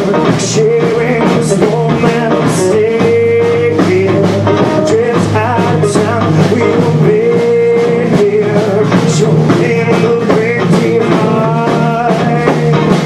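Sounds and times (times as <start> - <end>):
bending electric guitar notes: 0.0 - 13.0
live rock band playing: 0.0 - 13.0.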